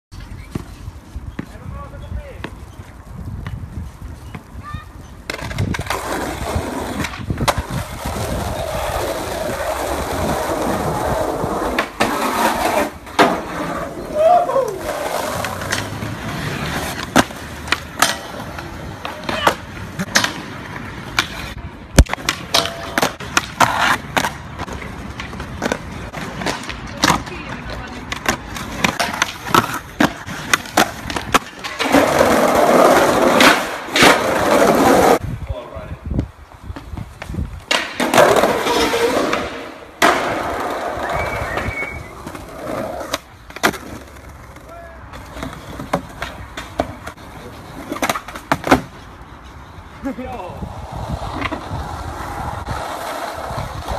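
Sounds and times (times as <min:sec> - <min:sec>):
skateboard wheels rolling on concrete: 0:00.1 - 0:53.9
skateboard trucks grinding: 0:00.2 - 0:35.3, 0:36.6 - 0:53.9
skateboard pops and clacks: 0:05.2 - 0:09.7, 0:11.6 - 0:13.8, 0:14.9 - 0:35.1, 0:36.8 - 0:47.2, 0:47.8 - 0:49.0.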